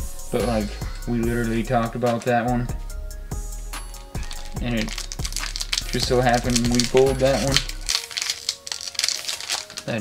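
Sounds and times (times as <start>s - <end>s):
foil wrapper crinkling: 3.9s - 10.0s.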